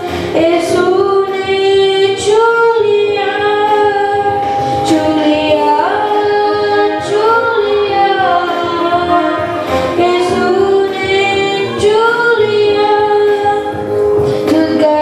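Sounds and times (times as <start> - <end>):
boy singing into a microphone: 0.0 - 15.0.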